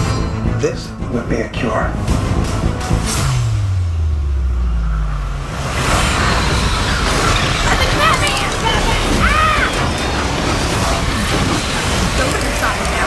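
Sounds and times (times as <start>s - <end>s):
loud rumbling wash: 4.2s - 13.0s.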